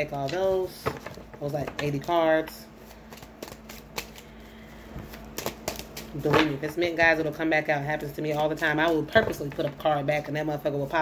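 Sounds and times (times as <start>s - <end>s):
cards being handled: 0.0s - 7.0s
card taps: 3.1s - 4.2s.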